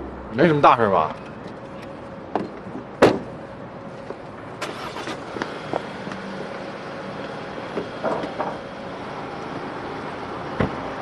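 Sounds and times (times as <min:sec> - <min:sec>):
car door slamming: 0:02.4 - 0:03.4, 0:10.6 - 0:10.9.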